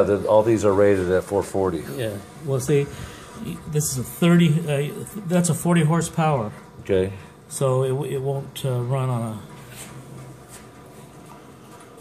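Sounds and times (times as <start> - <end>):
low background noise: 0.0 - 12.0.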